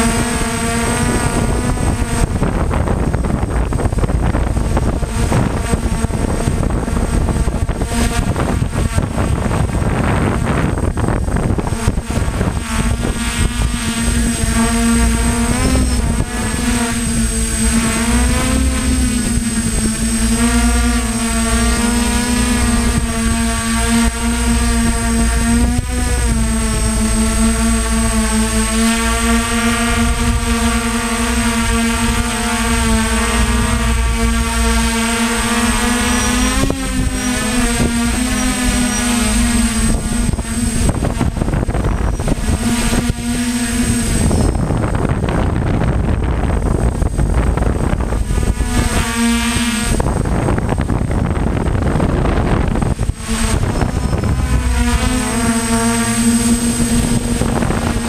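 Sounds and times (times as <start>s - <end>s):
drone motors whining: 0.0s - 58.0s
wind on microphone: 0.0s - 58.0s.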